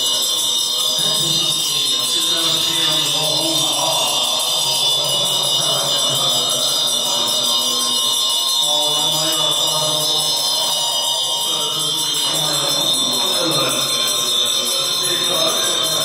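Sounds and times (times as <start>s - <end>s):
high ringing drone: 0.0s - 16.0s
voices chanting mantra: 0.0s - 16.0s.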